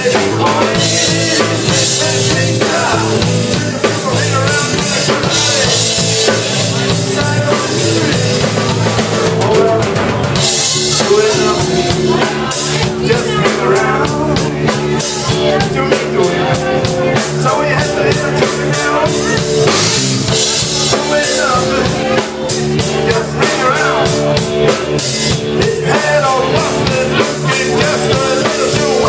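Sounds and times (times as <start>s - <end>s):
drum kit beat: 0.0s - 29.0s
electric guitar: 0.0s - 29.0s
keyboard: 0.0s - 29.0s.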